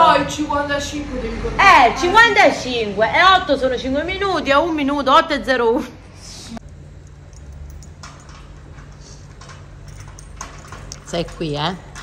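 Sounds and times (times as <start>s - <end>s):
low steady hum: 6.1s - 12.0s.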